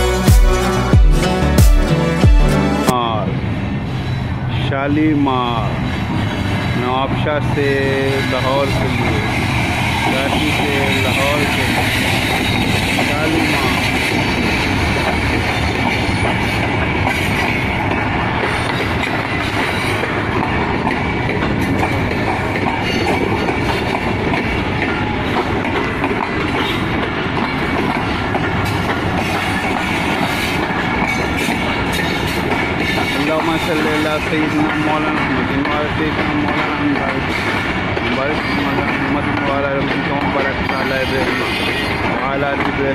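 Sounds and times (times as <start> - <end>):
train coaches rumbling past: 2.9 - 42.9
clickety-clack of wheels on rails: 3.8 - 42.9.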